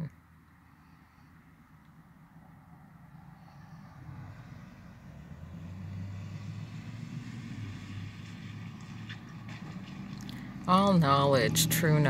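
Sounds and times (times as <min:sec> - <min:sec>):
engine rumbling: 0:00.0 - 0:12.0.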